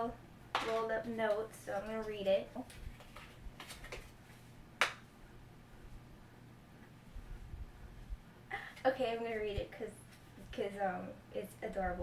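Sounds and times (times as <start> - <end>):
paper rustling: 2.6 - 4.5.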